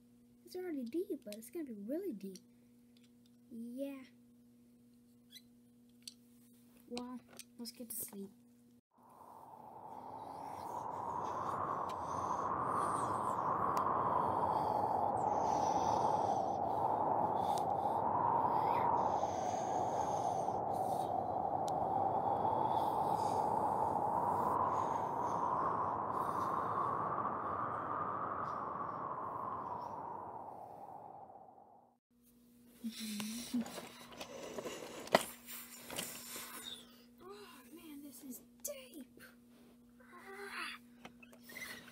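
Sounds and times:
storm wind whistling: 9.0 - 32.0.

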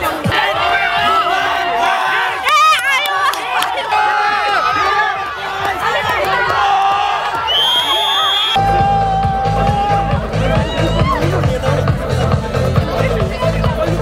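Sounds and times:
pop music with steady beat: 0.0 - 1.2, 8.6 - 14.0
crowd cheering and shouting: 0.0 - 14.0.

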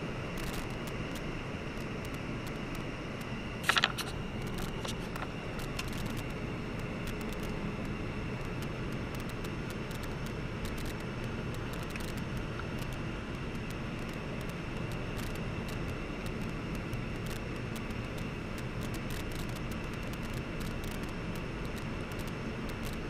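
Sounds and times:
car road and engine noise: 0.0 - 23.0.

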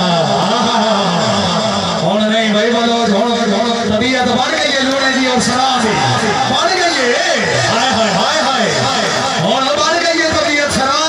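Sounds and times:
crowd background: 0.0 - 11.0.

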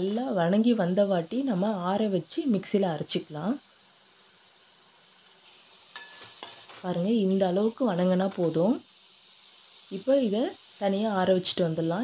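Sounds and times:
food frying in pan: 0.0 - 12.0
spatula scraping metal pan: 5.9 - 6.8.

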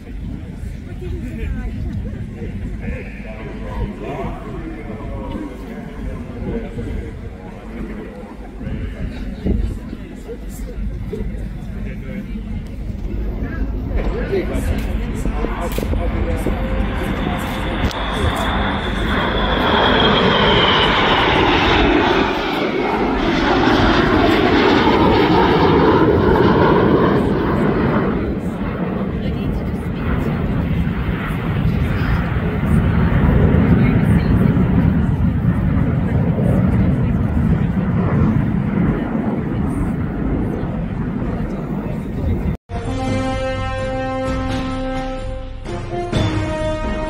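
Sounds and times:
jet engine roar: 0.0 - 42.6
jet engine whine falling: 0.0 - 42.6.

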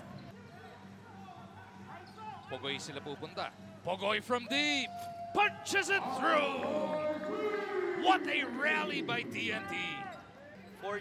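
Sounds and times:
players' voices: 1.1 - 11.0.

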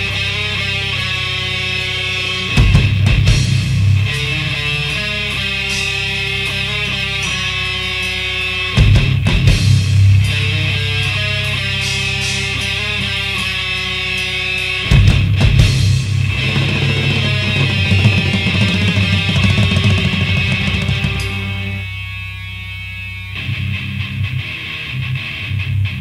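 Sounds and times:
bass and drums: 0.0 - 26.0
clean picked guitar: 0.0 - 26.0
distorted electric guitars: 0.0 - 26.0.

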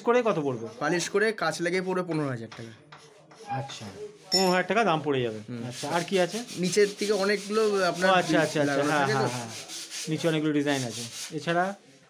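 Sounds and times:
men talking: 0.0 - 11.8
quick rubbing strokes: 3.0 - 12.0.

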